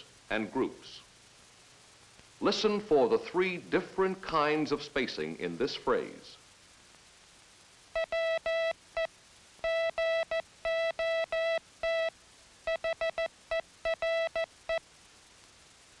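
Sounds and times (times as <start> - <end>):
morse code tone: 8.0 - 12.1, 12.7 - 14.5.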